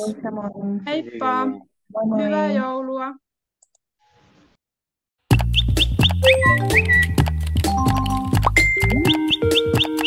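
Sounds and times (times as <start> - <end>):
person speaking: 0.0 - 2.8.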